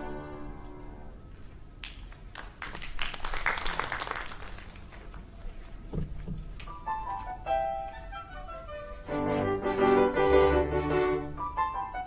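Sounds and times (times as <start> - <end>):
string orchestra and piano chord: 0.0 - 1.2, 6.9 - 12.0
audience applause: 2.3 - 5.3.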